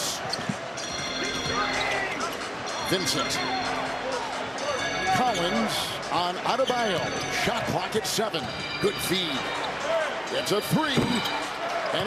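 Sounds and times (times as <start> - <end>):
crowd noise: 0.0 - 12.0
music from arena speakers: 0.0 - 12.0
sneakers squeaking on court: 10.8 - 12.0.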